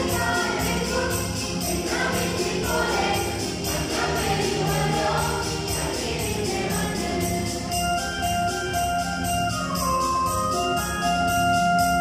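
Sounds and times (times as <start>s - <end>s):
choir singing a carol: 0.0s - 8.1s
steady beat: 0.0s - 12.0s.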